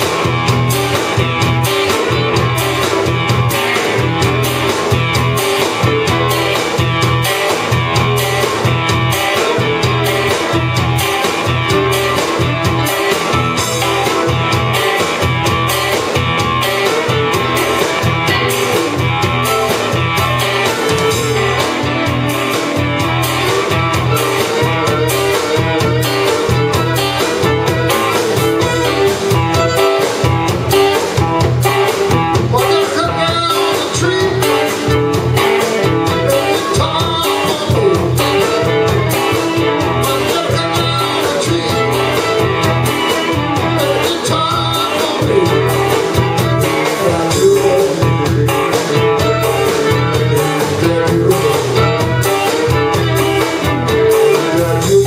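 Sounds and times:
fiddle: 0.0 - 32.3, 33.0 - 54.7
drum kit steady beat: 0.0 - 55.0
electric bass: 0.0 - 55.0
electric guitars: 0.0 - 55.0.

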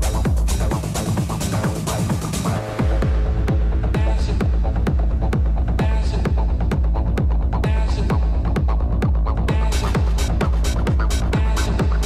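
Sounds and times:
deep bass: 0.0 - 12.0
techno kick drum: 0.0 - 12.0.

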